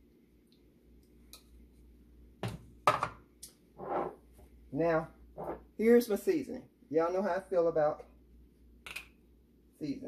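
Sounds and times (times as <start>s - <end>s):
measuring cup set on counter: 3.8s - 4.2s, 5.4s - 5.7s.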